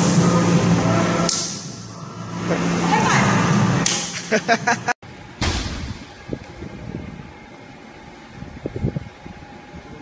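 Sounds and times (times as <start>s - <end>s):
person laughing: 4.2s - 5.0s.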